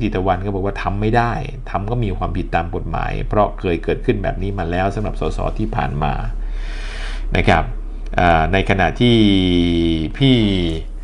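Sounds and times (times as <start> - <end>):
man speaking: 0.0 - 6.4, 7.3 - 11.0.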